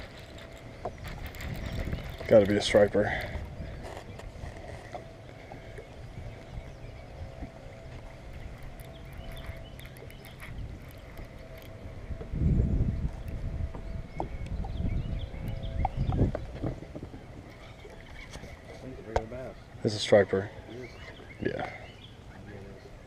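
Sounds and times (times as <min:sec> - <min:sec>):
fishing reel cranking: 0:00.0 - 0:04.0, 0:08.3 - 0:11.8
low wind: 0:00.0 - 0:23.0
water noise: 0:00.0 - 0:23.0.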